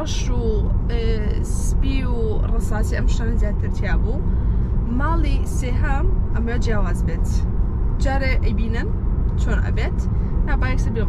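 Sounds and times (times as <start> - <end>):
woman talking: 0.0 - 7.4, 8.0 - 11.0
road and tyre rumble: 0.0 - 11.0.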